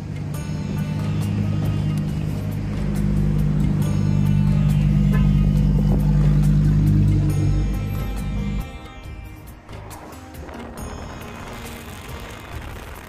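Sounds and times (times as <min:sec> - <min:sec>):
background music: 0:00.0 - 0:13.0
car engine humming: 0:00.0 - 0:13.0.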